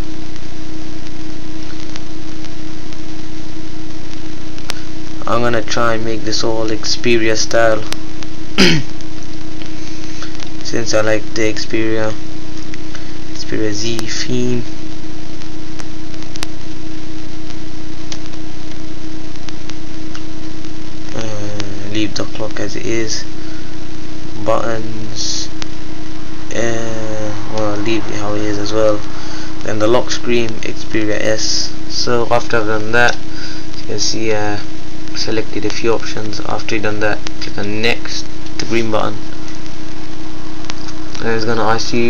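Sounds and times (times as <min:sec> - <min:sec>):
constant tone: 0:00.0 - 0:42.0
low hum: 0:00.0 - 0:42.0
steady hiss: 0:00.0 - 0:42.0.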